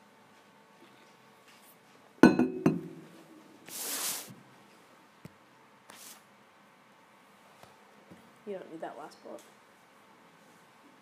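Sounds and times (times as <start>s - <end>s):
soft hiss: 3.0s - 4.9s.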